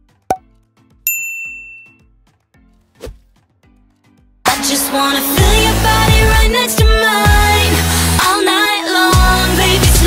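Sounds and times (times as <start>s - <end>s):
bell-like ding: 1.1s - 2.0s.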